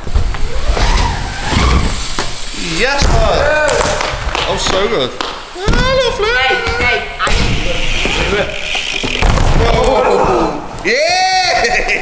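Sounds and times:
bike tyres rumbling on wooden ramp: 0.0 - 10.8.

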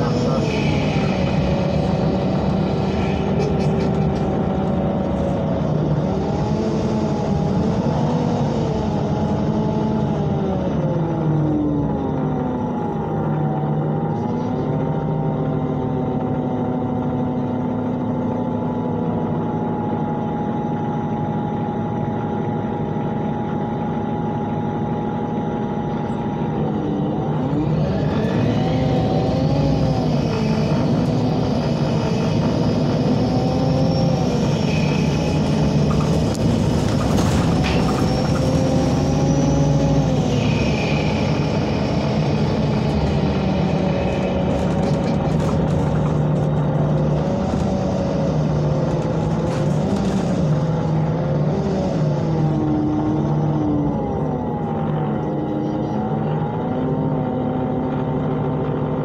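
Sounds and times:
bus engine: 0.0 - 59.0
high whine: 0.0 - 59.0.

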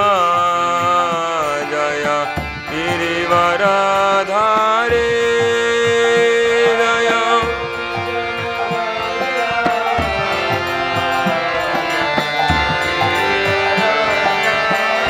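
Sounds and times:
harmonium: 0.0 - 15.0
man chanting: 0.0 - 15.0
two-headed drum strokes: 7.2 - 15.0.

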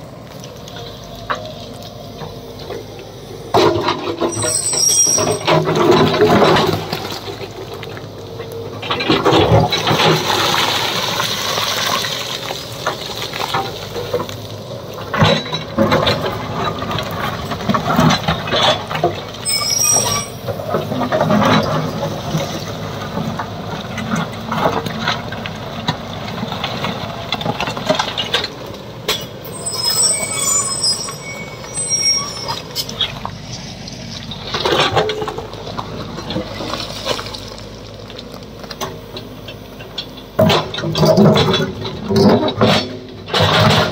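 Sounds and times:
excavator diesel engine under load: 0.0 - 43.9
steel bucket scraping rock: 3.6 - 7.6, 17.7 - 22.1, 29.5 - 33.2.

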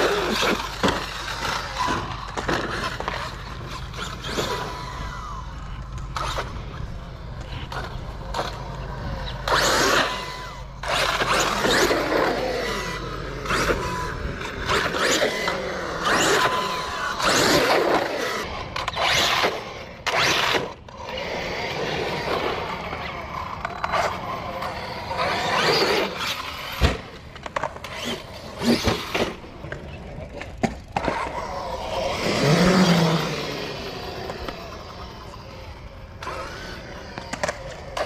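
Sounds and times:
rc truck motor whine: 0.0 - 38.0.

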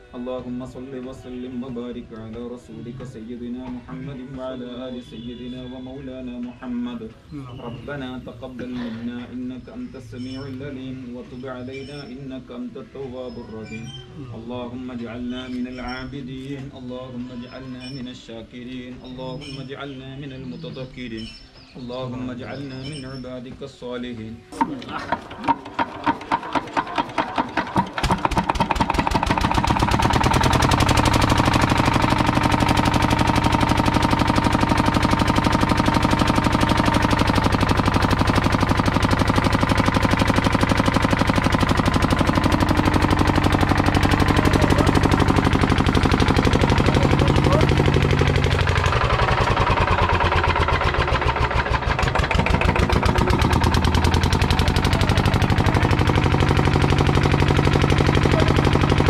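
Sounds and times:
diesel engine knocking steadily: 24.6 - 59.0
engine cranking: 24.6 - 59.0.

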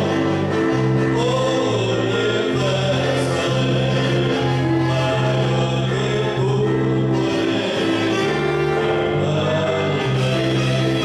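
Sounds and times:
group singing gospel: 0.0 - 11.0
held bass notes: 0.0 - 11.0.

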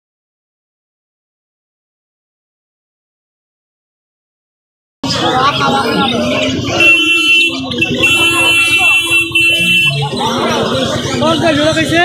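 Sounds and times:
people talking: 5.0 - 12.0.

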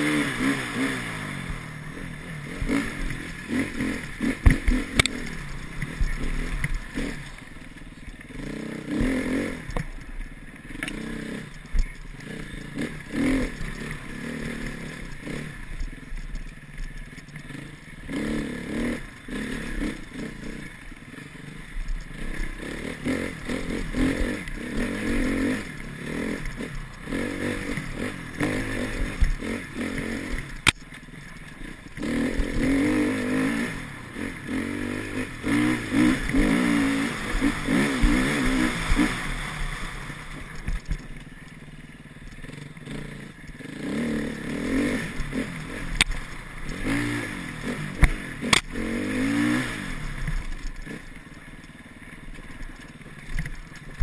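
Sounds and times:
dirt bike engine revving: 0.0 - 51.8.

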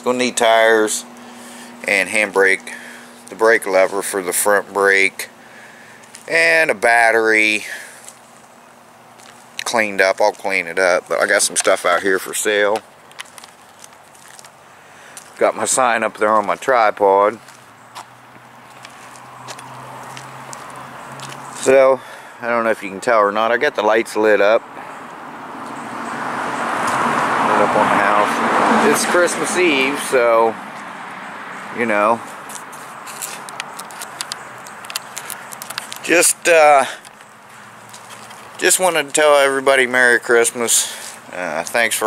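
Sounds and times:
outdoor background hiss: 0.0 - 42.0
footsteps on dry ground: 5.4 - 6.4, 7.9 - 21.6, 32.2 - 39.6.

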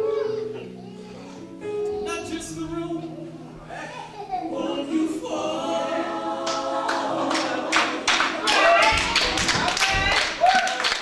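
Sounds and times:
gospel choir singing: 2.0 - 10.5
hand clapping: 6.5 - 11.0.

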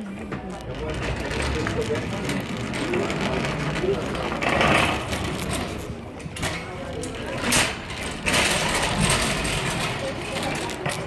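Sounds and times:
wire shopping cart rattling: 0.0 - 11.0.

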